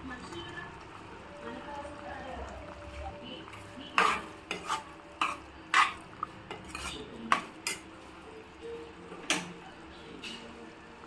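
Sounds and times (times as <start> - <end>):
metal spoon scraping a pot: 3.9 - 7.9.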